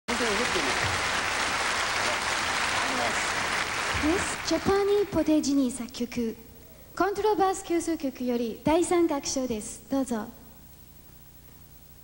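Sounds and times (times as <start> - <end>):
audience applauding: 0.1 - 5.2.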